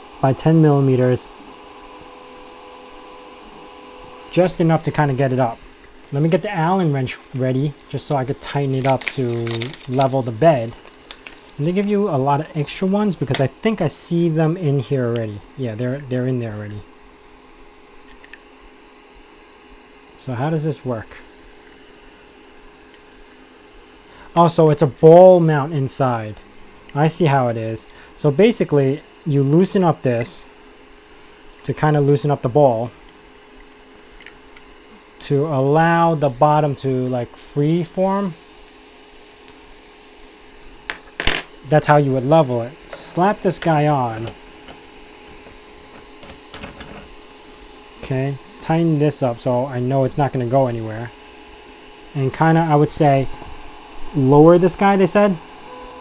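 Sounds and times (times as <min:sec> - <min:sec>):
printer cooling fan running: 0:00.0 - 0:56.0.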